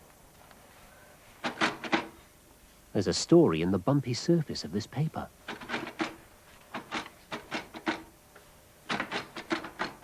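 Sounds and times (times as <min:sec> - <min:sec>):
quick mechanical clacks: 0:08.9 - 0:10.0.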